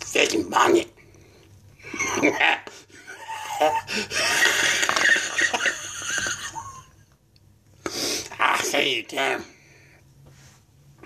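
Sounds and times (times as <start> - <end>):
man wheezing hoarsely: 3.4 - 4.5.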